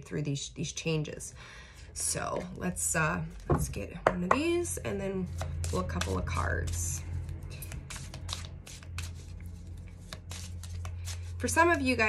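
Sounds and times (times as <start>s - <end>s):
cards being shuffled: 5.2s - 12.0s.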